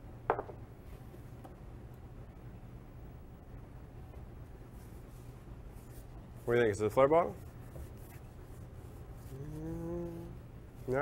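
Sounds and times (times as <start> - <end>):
low background hum: 0.0 - 11.0
man humming: 9.2 - 10.5.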